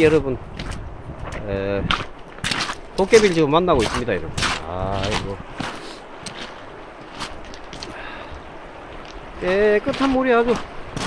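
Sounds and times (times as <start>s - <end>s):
river running over stones: 0.0s - 0.8s, 1.4s - 11.0s
stones clicking underfoot: 0.6s - 10.7s.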